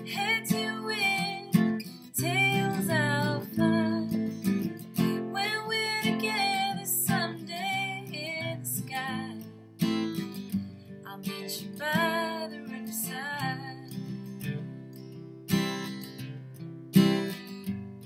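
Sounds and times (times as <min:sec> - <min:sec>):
woman singing: 0:00.0 - 0:09.5, 0:11.1 - 0:14.1
strummed acoustic guitar: 0:00.0 - 0:18.0.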